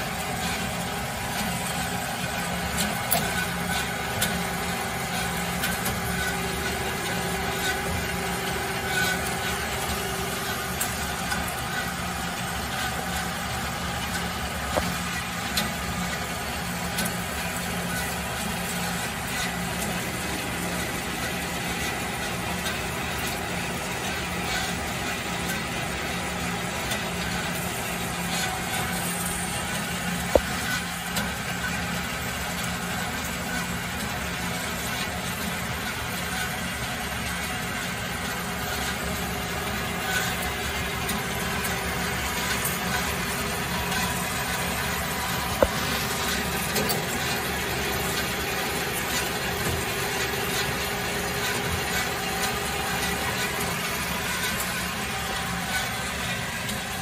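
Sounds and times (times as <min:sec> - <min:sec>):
bandsaw running: 0:38.2 - 0:57.0.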